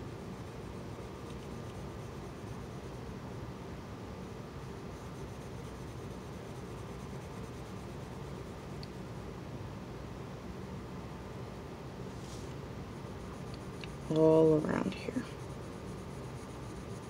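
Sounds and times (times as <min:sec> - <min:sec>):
pencil scratching on paper: 0:00.0 - 0:03.1, 0:04.7 - 0:08.8, 0:13.0 - 0:17.0.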